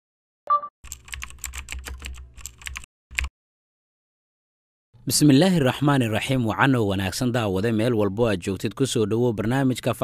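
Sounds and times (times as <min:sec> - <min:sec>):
short beep: 0:00.5 - 0:00.7
rapid keyboard typing clicks: 0:00.9 - 0:03.3.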